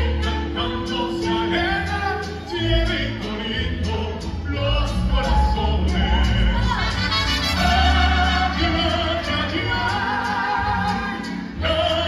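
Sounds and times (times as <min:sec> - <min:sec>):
mariachi band playing: 0:00.0 - 0:12.0.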